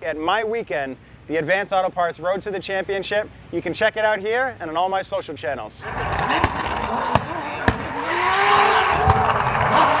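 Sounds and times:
car engine at high revs: 0:05.8 - 0:10.0.

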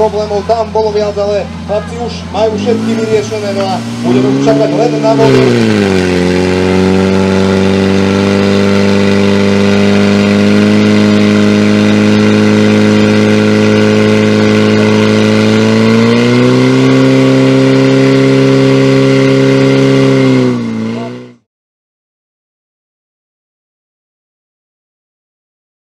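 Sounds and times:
pump engine running at high revs: 0:00.0 - 0:21.5.

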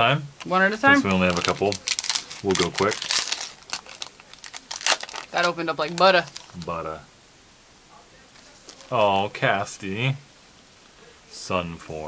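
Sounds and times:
foil wrapper tearing and crinkling: 0:01.0 - 0:06.7.

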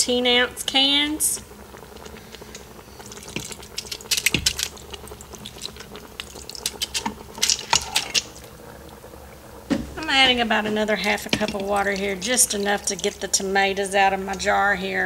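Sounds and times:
spatula clicking and scraping: 0:03.2 - 0:08.3.

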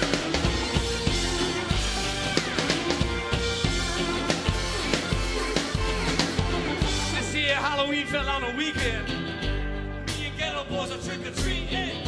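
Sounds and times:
acoustic guitar: 0:00.0 - 0:12.0
bass guitar: 0:00.0 - 0:12.0
drums: 0:00.0 - 0:12.0
wavering lead guitar line: 0:00.0 - 0:12.0.

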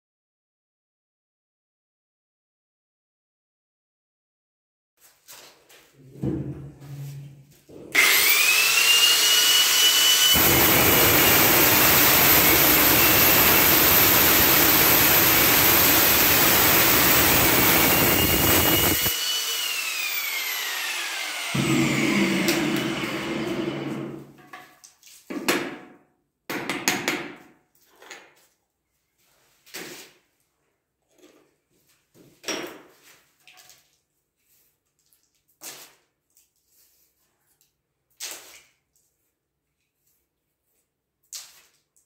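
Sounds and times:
power cutter whining: 0:07.9 - 0:24.3
cutter grinding tile: 0:07.9 - 0:24.4.

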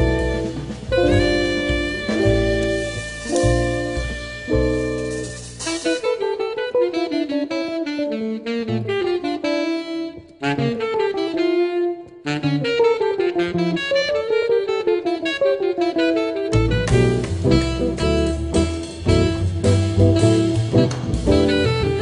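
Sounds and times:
walking bass: 0:00.0 - 0:06.2, 0:16.5 - 0:22.0
saxophone improvising: 0:00.0 - 0:22.0.

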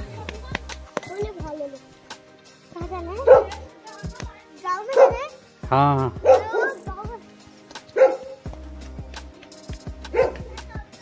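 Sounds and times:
music with bass beat: 0:00.0 - 0:11.0
dog barking: 0:03.2 - 0:03.7, 0:04.9 - 0:05.4, 0:06.2 - 0:06.9, 0:07.9 - 0:08.4, 0:10.1 - 0:10.6.

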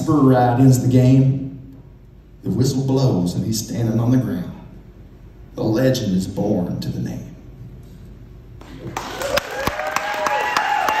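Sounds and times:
audience applauding: 0:08.6 - 0:11.0
person whooping: 0:08.9 - 0:11.0.

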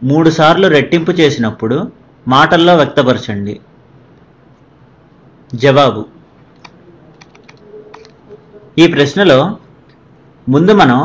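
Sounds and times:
faint sharp computer clicks: 0:06.5 - 0:08.2.

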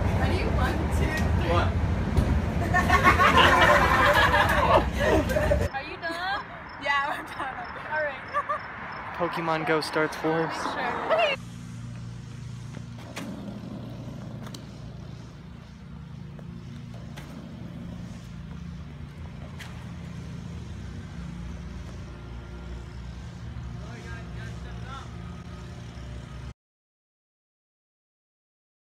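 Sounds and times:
low motor hum: 0:11.4 - 0:26.5.

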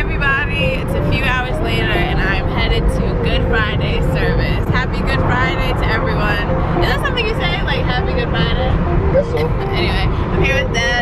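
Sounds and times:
woman talking: 0:00.0 - 0:08.8, 0:09.4 - 0:11.0
car cabin rumble: 0:00.0 - 0:11.0.

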